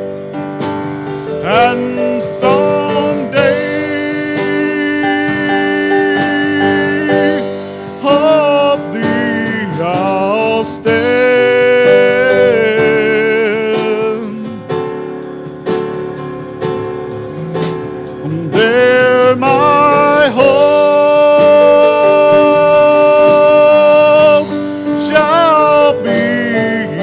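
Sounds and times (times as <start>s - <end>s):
sustained instrumental backing: 0.0s - 27.0s
man singing gospel into microphone: 1.2s - 15.2s, 17.0s - 27.0s.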